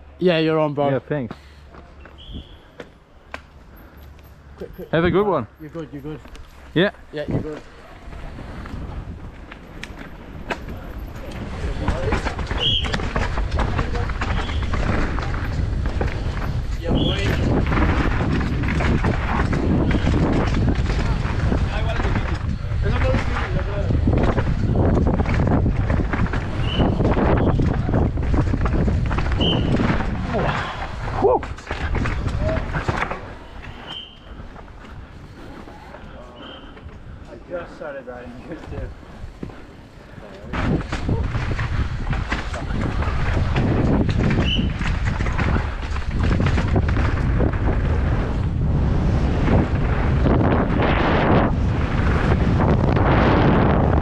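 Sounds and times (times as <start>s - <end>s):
bike tyres on loose dirt: 0.0s - 54.0s
bike chain and suspension rattling: 3.6s - 35.4s, 36.8s - 48.7s
wind rushing over microphone: 6.8s - 54.0s.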